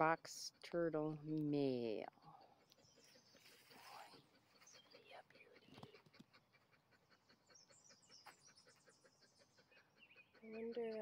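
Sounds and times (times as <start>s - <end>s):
faint high bird chirps: 2.4s - 6.0s.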